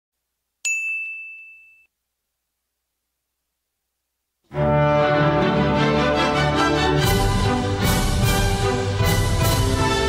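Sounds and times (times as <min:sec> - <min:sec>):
high bell-like ding: 0:00.6 - 0:01.9.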